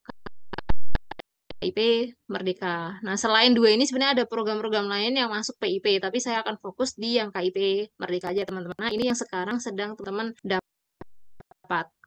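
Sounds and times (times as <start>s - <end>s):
woman speaking: 1.6s - 10.6s, 11.7s - 12.0s.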